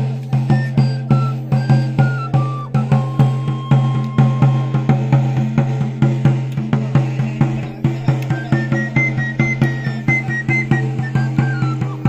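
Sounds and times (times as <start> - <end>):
drum beating even rhythm: 0.0 - 12.0
high pipe melody: 0.2 - 12.0.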